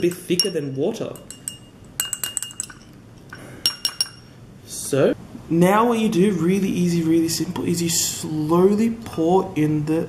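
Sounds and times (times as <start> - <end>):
metal utensil clinking against glass: 0.0 - 3.0, 3.7 - 4.3.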